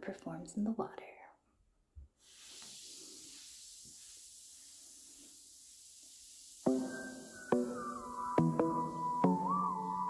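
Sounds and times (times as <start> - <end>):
bath bomb fizzing: 2.2 - 8.4.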